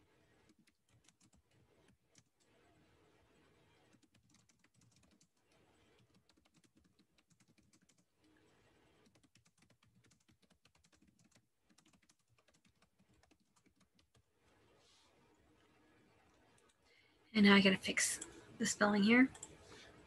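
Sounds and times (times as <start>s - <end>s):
faint typing on keyboard: 0.0s - 2.6s, 3.3s - 17.1s, 17.9s - 20.0s.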